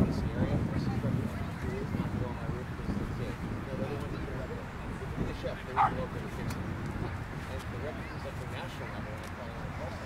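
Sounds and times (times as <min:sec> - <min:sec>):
dog barking: 0:05.8 - 0:06.0.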